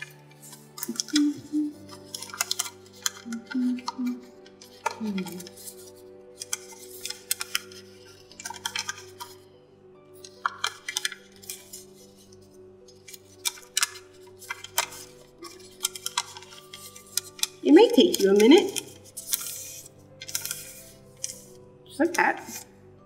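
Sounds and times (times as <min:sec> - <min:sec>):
paper crackling and rustling: 0:00.0 - 0:09.4, 0:10.2 - 0:21.6
soft music with held tones: 0:00.0 - 0:23.0.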